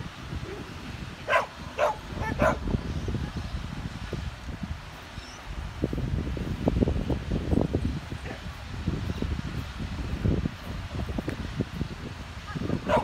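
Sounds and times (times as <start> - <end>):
dog barking: 1.3 - 2.6.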